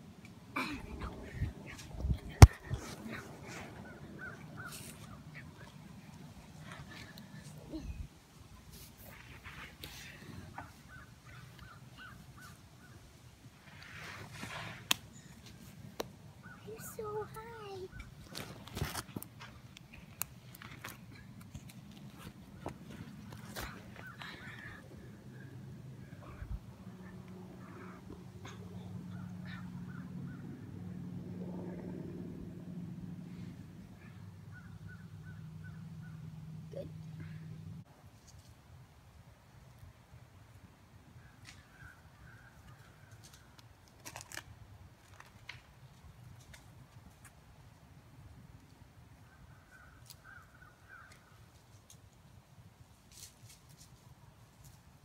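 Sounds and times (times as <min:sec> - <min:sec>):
rustle of leaves and branches: 0:00.6 - 0:26.4, 0:37.9 - 0:55.0
steady low hum: 0:15.1 - 0:37.9.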